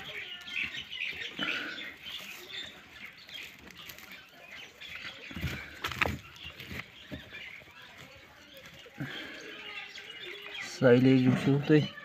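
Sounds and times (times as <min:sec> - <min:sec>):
hand rustling through silage: 0:00.0 - 0:09.7.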